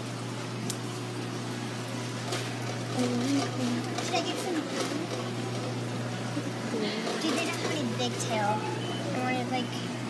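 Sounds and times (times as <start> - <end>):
aquarium pumps humming: 0.0 - 10.0.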